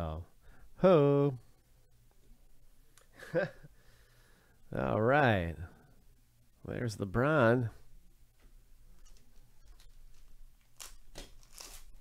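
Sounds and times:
wrapper crinkling: 9.0 - 12.0
wrapper ripping: 9.7 - 12.0.

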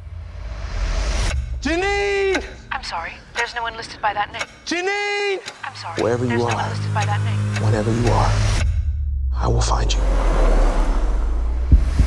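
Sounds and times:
car driving: 5.5 - 12.0
deep rumble: 7.3 - 12.0
sharp low hit: 8.4 - 12.0.

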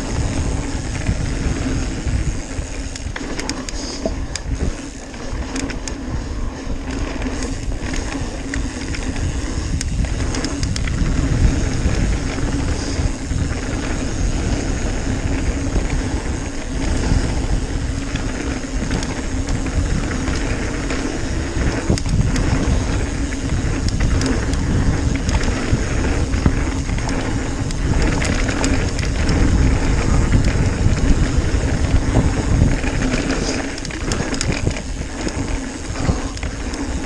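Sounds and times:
bike clicks and rattles: 0.0 - 37.0
bike tyres rumbling on dirt: 0.0 - 37.0
wind on microphone: 0.0 - 37.0.

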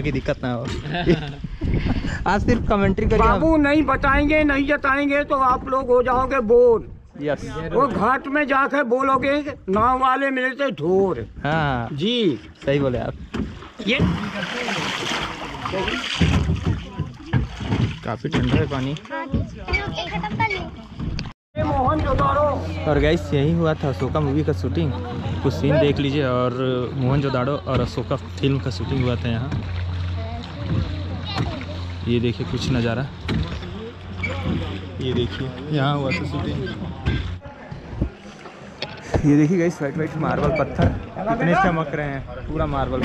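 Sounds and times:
wind buffeting microphone: 0.0 - 8.2
water and wind rushing around boat: 0.0 - 43.0
voices talking: 18.3 - 43.0
low steady rumble: 21.6 - 37.4.

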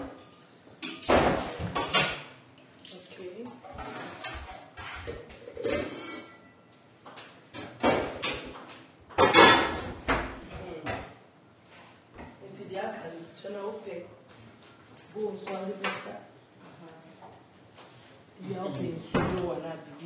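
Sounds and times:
metal pots and pans clattering: 0.8 - 2.2, 3.6 - 6.5, 9.2 - 10.0.

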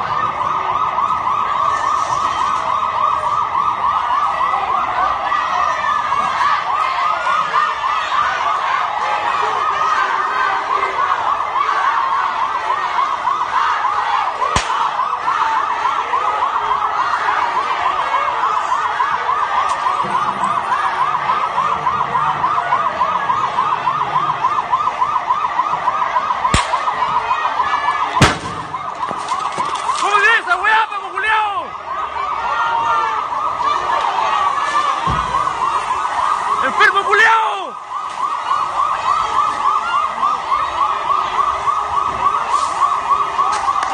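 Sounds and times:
police siren warbling: 0.0 - 43.9
faint cracks: 14.5 - 14.9, 28.2 - 30.1
loud sharp bang: 14.6 - 14.9, 26.5 - 26.9, 28.2 - 28.8.

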